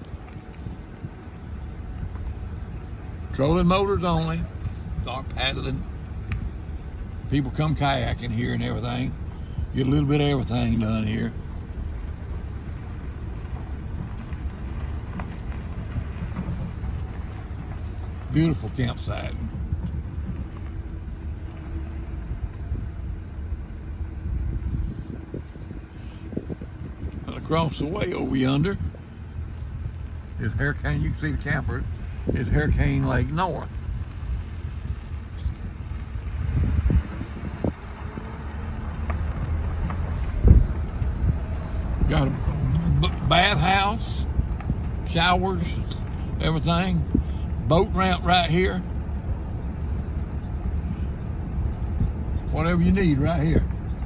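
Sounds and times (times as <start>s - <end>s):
vehicle engine and road rumble: 0.0s - 54.0s.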